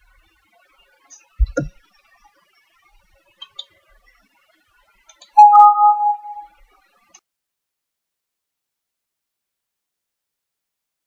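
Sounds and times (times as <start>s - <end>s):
two-tone chime: 5.4s - 6.5s.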